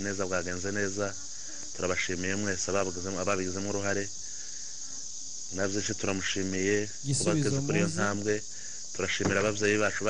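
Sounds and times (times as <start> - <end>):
high hiss: 0.0 - 10.0
man speaking: 5.6 - 8.4, 9.0 - 10.0.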